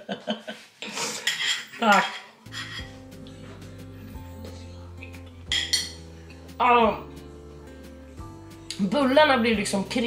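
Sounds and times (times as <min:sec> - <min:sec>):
fork scraping a plate: 0:00.8 - 0:03.0
background music with bass: 0:02.5 - 0:10.0.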